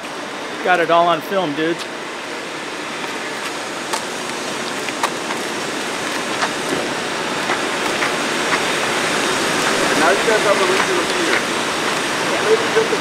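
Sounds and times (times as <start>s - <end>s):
steady rushing noise: 0.0s - 13.0s.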